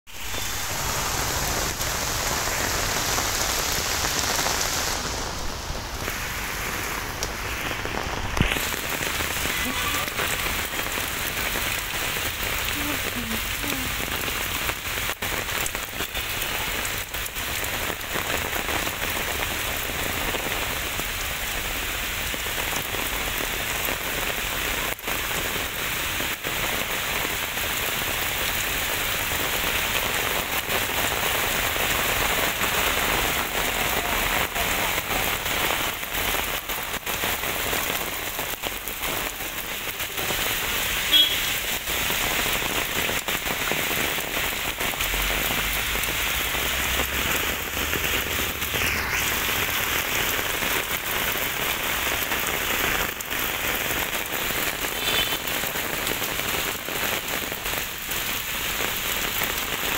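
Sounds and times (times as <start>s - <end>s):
heavy rain on pavement: 0.0s - 59.9s.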